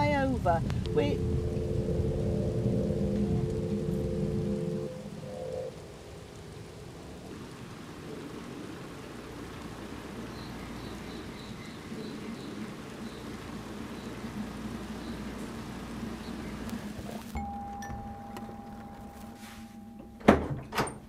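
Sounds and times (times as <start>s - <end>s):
car cabin rumble: 0.0s - 4.9s, 13.1s - 21.0s
rain hissing on wet street: 0.0s - 17.8s, 18.4s - 19.7s
steady two-note tone: 0.8s - 5.2s, 17.4s - 20.3s.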